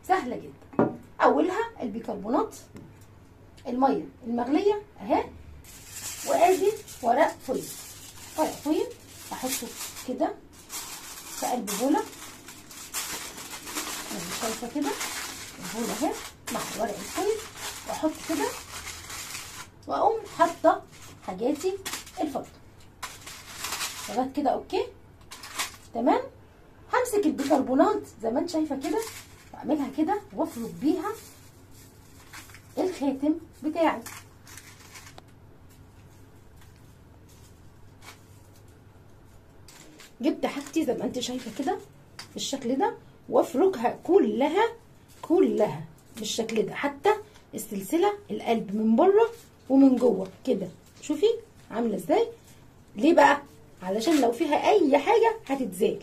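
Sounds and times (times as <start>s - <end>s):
aluminium foil crinkling: 5.6s - 26.0s, 27.2s - 41.9s.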